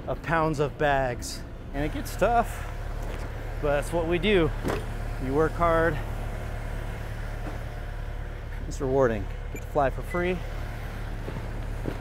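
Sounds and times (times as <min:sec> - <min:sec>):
ground vehicle engines rumbling: 0:00.0 - 0:12.0.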